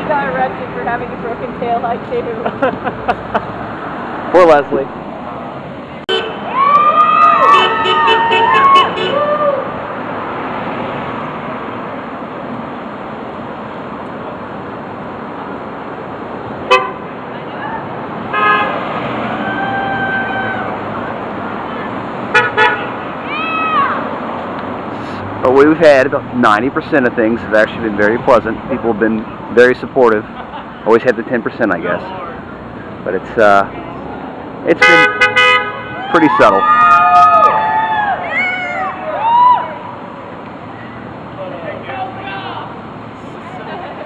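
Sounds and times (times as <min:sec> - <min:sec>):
road traffic noise: 0:00.0 - 0:44.0
car horns honking: 0:06.0 - 0:06.5, 0:07.4 - 0:09.3, 0:16.6 - 0:17.2, 0:18.3 - 0:18.9, 0:22.3 - 0:23.0, 0:34.7 - 0:36.0.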